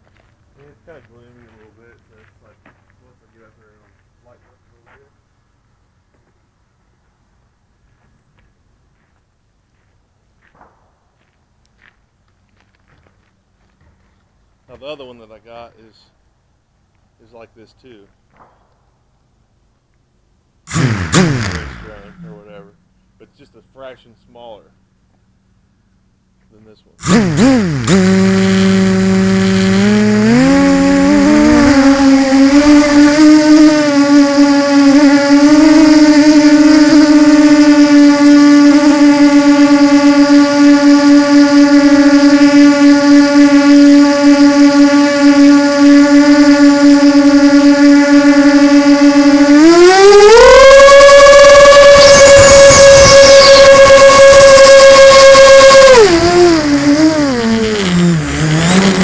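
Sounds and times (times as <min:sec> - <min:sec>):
drone motors whining: 0:20.7 - 0:22.8, 0:27.0 - 0:59.0.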